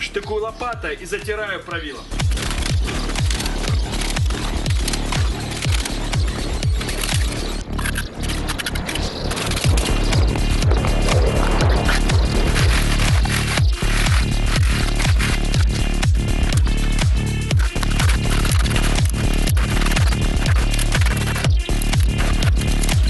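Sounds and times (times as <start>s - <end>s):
electronic music with kick drum: 0.0s - 23.0s.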